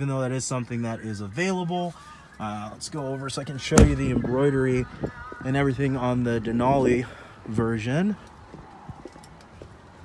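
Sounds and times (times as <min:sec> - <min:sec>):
footsteps on asphalt: 0:03.8 - 0:10.0.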